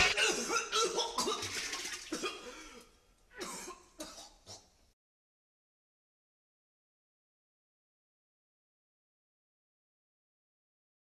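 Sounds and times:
man coughing: 0.0s - 1.4s, 3.4s - 4.7s.

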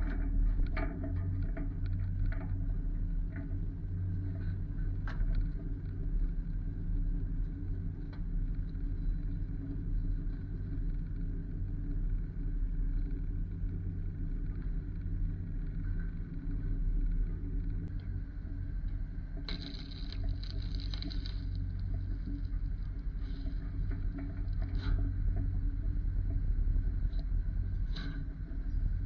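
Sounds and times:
faint clicks: 14.4s - 25.6s.

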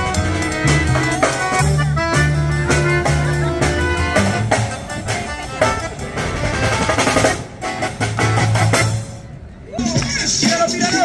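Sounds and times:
accordion playing: 0.0s - 9.3s
drum kit beat: 0.0s - 9.3s
plucked double bass: 0.0s - 9.3s.

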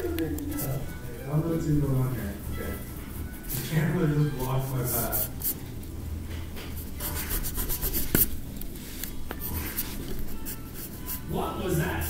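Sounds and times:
pencil scratching on paper: 1.6s - 5.6s, 6.8s - 8.3s, 9.4s - 11.8s.

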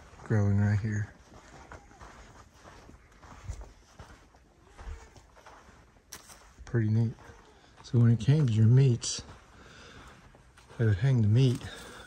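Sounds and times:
soft footsteps: 0.0s - 12.0s.

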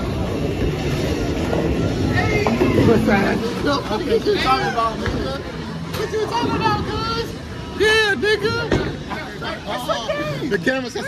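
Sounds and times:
bowling ball rolling: 0.2s - 4.3s.

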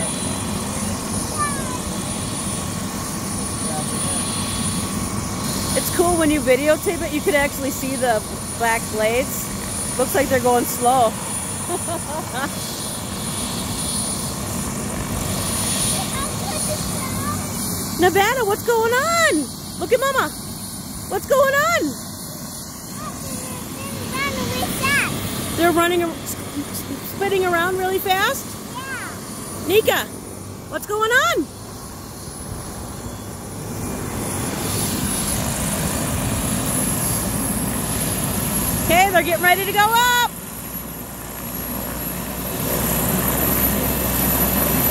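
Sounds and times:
helicopter engine and rotor: 0.0s - 44.9s.

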